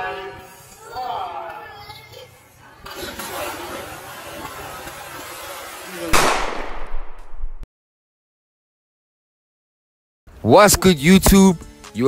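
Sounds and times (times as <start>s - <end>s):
pool water splashing: 2.7s - 6.4s.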